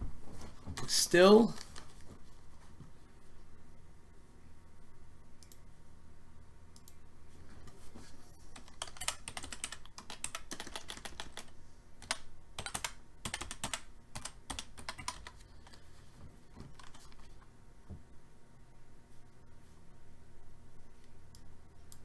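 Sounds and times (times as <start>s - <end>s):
computer keyboard typing: 8.6s - 15.9s, 16.6s - 17.4s.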